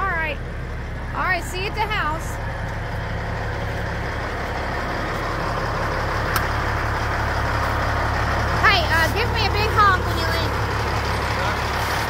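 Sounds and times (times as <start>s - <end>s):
diesel truck engine idling: 0.0s - 12.0s.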